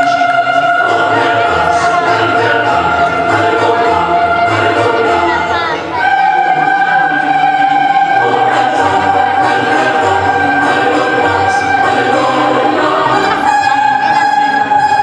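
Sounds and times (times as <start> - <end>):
operatic choir singing: 0.0 - 15.0.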